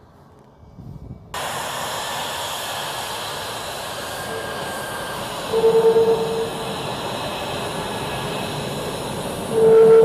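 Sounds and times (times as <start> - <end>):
jet engine roar and hiss: 1.3 - 10.0.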